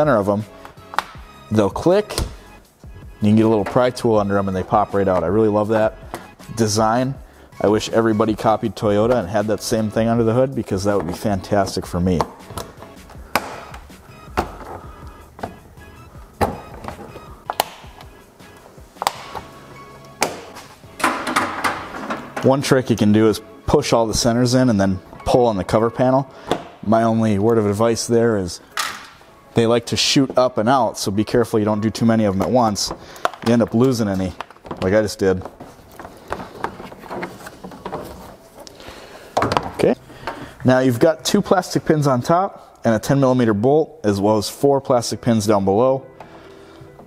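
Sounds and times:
background music: 0.0 - 47.0
plastic clips clicking: 32.4 - 34.9
plastic panel rattling: 32.4 - 38.4.

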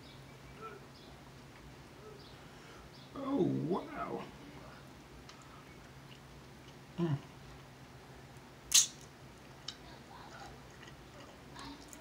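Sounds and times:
man murmuring mm: 7.0 - 7.3
sharp hiss: 8.7 - 9.0.

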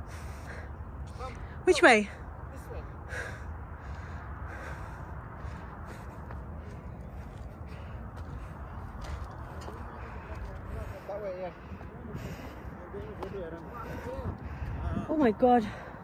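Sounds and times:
heavy out-of-breath breathing: 0.0 - 1.6, 2.2 - 16.0
steady low rumble: 0.0 - 16.0.

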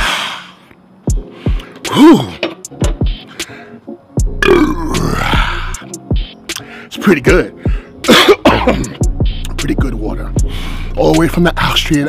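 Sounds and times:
hip-hop beat: 1.1 - 12.0
man burping loudly: 4.3 - 5.8.

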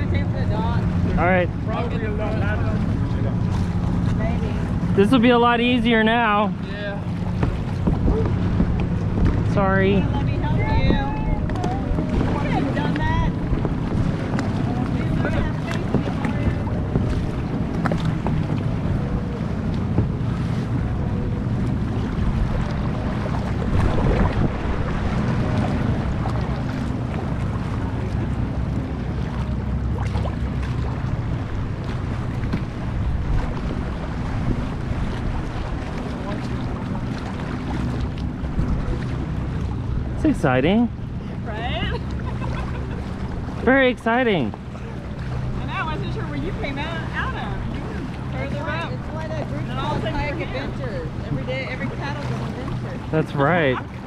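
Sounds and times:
water lapping and splashing: 0.0 - 54.0
wind buffeting microphone: 0.0 - 54.0.

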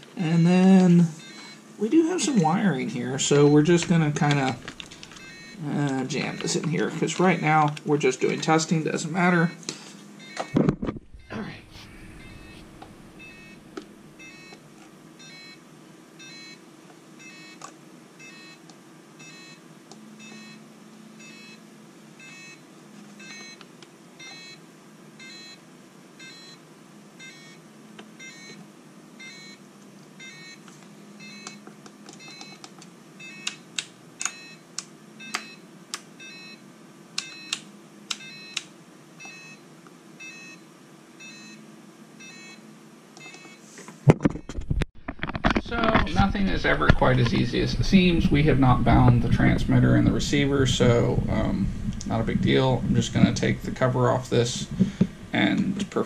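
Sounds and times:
short electronic beeps: 1.2 - 1.6, 5.0 - 6.6, 10.2 - 13.6, 14.2 - 14.6, 15.2 - 15.6, 16.2 - 16.6, 21.2 - 21.6, 42.2 - 42.6.

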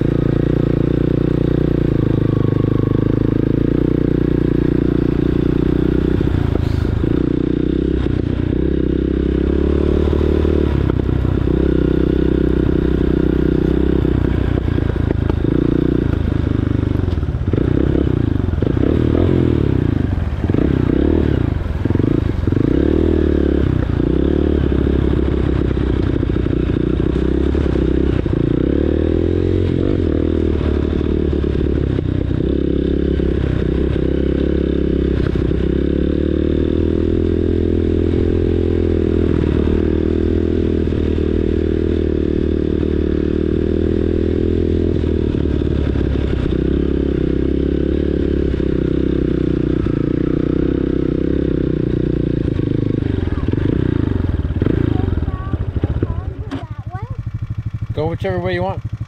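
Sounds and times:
dirt bike engine running: 0.0 - 59.0.

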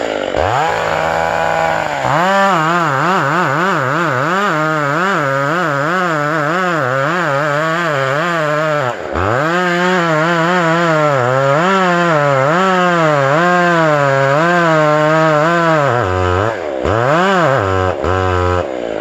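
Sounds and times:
chainsaw cutting wood: 0.0 - 19.0.

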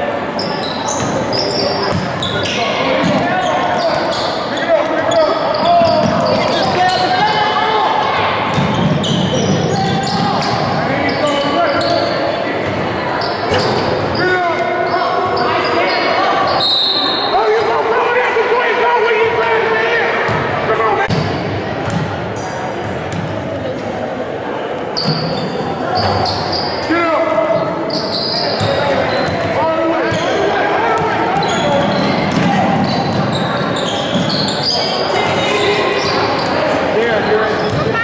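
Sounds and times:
voices echoing in a hall: 0.0 - 38.0
sneakers squeaking: 0.2 - 17.4, 24.8 - 26.9, 27.5 - 38.0.

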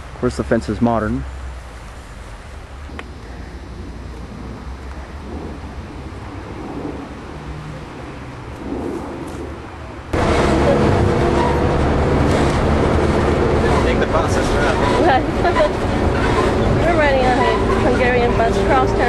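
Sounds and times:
bus engine drone: 0.0 - 19.0
low steady rumble: 0.0 - 19.0
road noise: 0.0 - 19.0.

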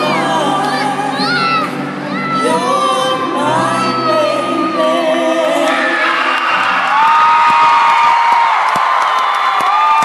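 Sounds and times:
crowd cheering: 5.6 - 10.0
scattered claps: 7.4 - 10.0.

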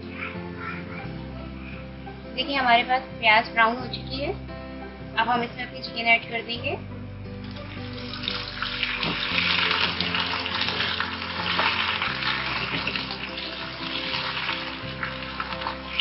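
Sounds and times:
chicken sizzling in hot oil: 7.4 - 16.0.

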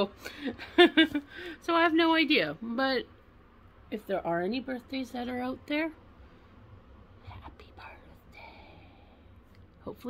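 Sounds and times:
low room hum: 0.0 - 10.0
woman whispering: 7.2 - 9.2.

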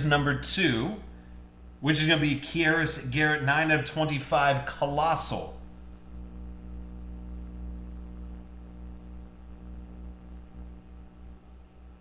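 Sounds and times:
faint room hiss: 0.0 - 12.0
low electrical hum: 0.0 - 12.0.

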